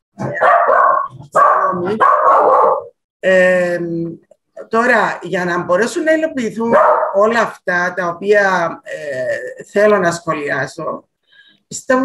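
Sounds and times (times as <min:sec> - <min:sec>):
dog barking: 0:00.2 - 0:03.0, 0:06.7 - 0:07.3.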